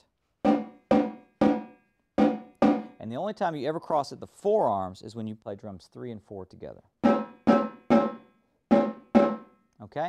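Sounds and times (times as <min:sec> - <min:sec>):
tenor drum strokes: 0:00.5 - 0:03.0, 0:07.0 - 0:09.5.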